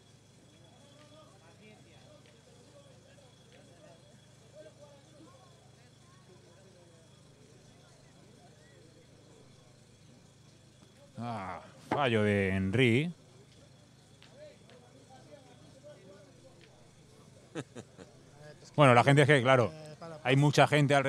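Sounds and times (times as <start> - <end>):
faint murmur of voices: 0.0 - 21.0
low steady hum: 9.5 - 13.1.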